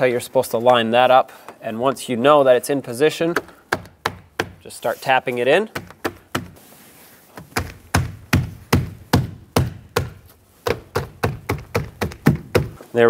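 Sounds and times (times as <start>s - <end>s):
dull tapping on rubber seal: 3.3s - 4.6s, 5.7s - 6.6s, 7.4s - 12.8s.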